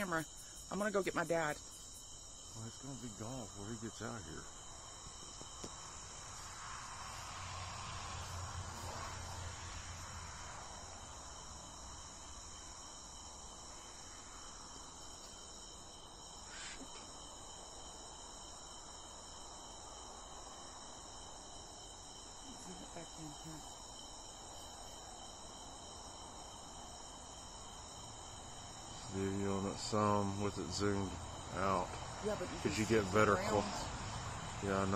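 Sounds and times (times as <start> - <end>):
crickets trilling: 0.0 - 34.9.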